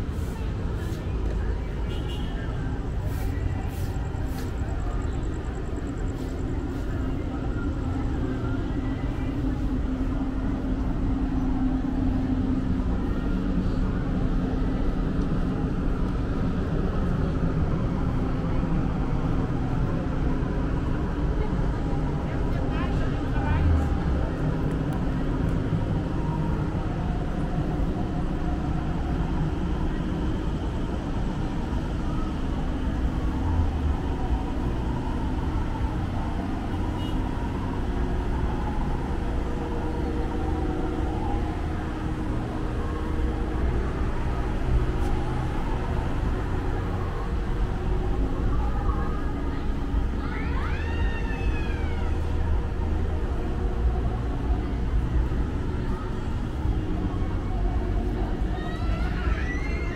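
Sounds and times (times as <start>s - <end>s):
faint voices of passers-by: 0.0s - 59.9s
traffic rumble: 0.0s - 59.9s.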